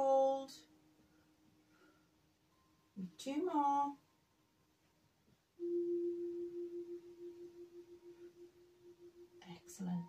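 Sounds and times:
ringing tone: 5.6 - 10.0.

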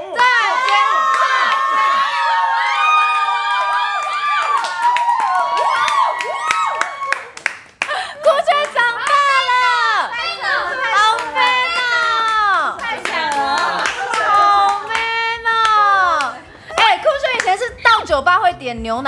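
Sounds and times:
group shouting: 0.0 - 7.2, 9.1 - 16.4
people clapping: 0.2 - 17.6
excited overlapping voices: 8.2 - 17.9.

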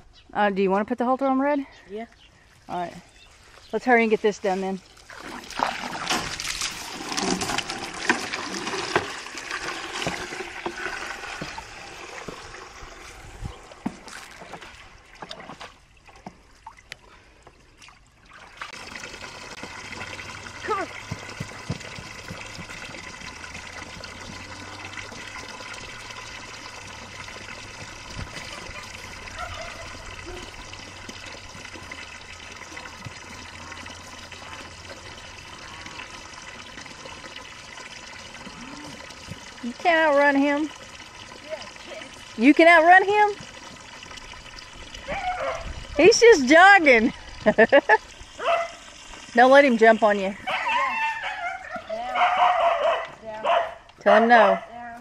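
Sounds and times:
hose water trickling into pans: 1.7 - 55.0.

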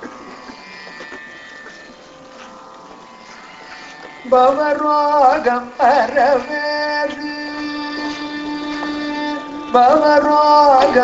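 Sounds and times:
buzzing drone: 0.0 - 11.0
man singing ornamented phrase: 4.3 - 11.0.

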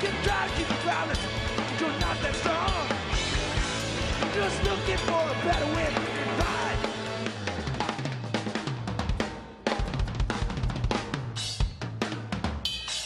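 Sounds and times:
live rock band: 0.0 - 13.0.

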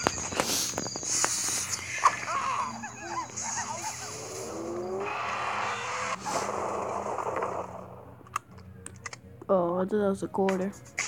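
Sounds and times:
rising tone: 0.0 - 8.2.

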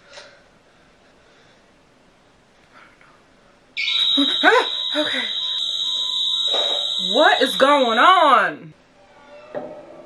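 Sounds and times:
burglar alarm tone: 3.8 - 8.4.

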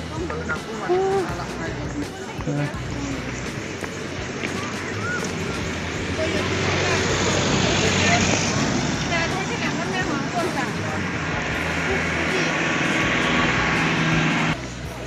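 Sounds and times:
people's voices: 0.0 - 15.0
roadside traffic with engine hum: 0.0 - 15.0.

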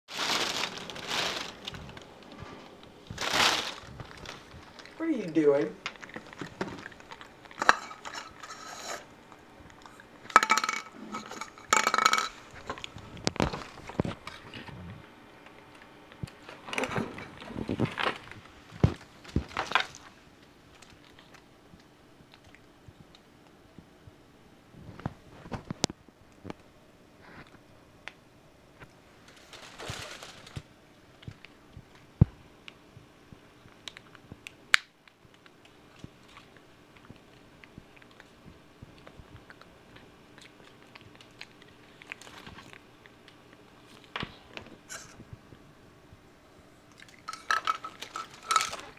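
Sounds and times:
plastic packet clicking and crinkling: 0.1 - 5.0, 29.3 - 32.0, 33.6 - 37.4, 47.0 - 48.9
plastic bag rustling: 0.1 - 9.1, 10.2 - 14.6, 16.4 - 21.4, 29.1 - 30.7, 47.1 - 48.9.

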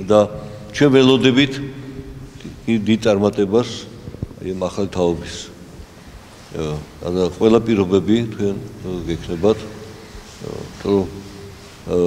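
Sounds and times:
man speaking slowly: 0.0 - 5.8, 6.5 - 12.0
low buzzy hum: 0.0 - 11.9.

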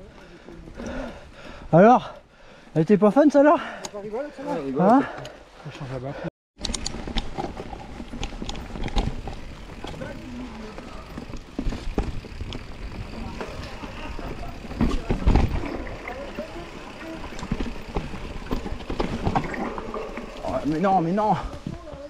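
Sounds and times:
bike rattling over bumps: 6.6 - 22.0
bike tyres rumbling on dirt: 6.9 - 22.0.

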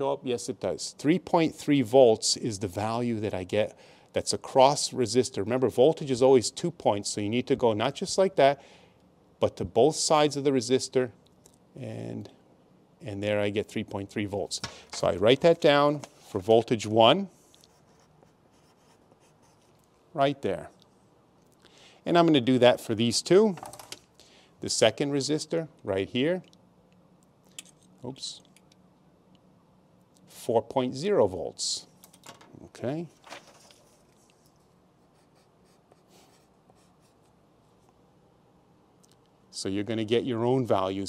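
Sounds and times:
pen scratching on paper: 17.6 - 19.8.

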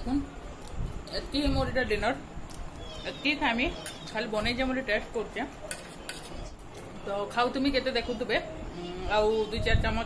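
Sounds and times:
spoon clinking against dish: 5.6 - 6.4.

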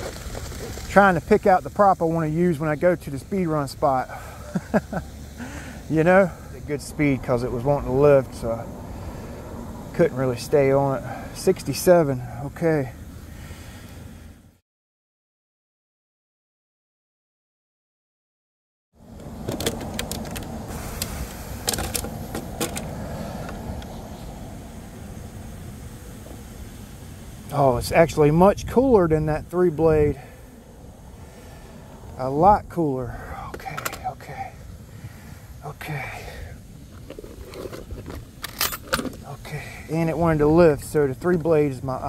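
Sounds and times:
low outdoor rumble: 0.0 - 14.6, 19.0 - 42.0
sharp clicks and clacks of handling: 19.2 - 23.9, 33.5 - 34.1.

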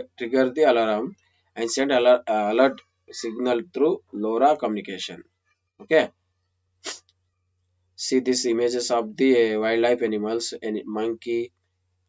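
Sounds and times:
faint low hum: 0.0 - 5.2, 7.7 - 11.5
man speaking: 0.0 - 5.2, 5.8 - 6.1, 8.0 - 11.5.

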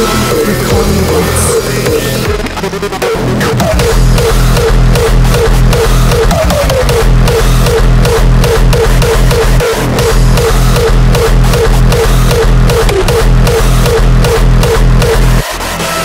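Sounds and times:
heavy kick drum: 0.0 - 15.5.

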